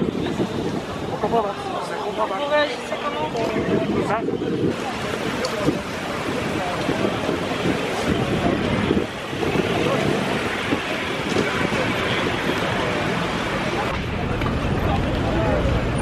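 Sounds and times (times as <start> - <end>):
wind noise on microphone: 0.0 - 1.8, 2.9 - 16.0
people talking indistinctly: 0.0 - 15.7.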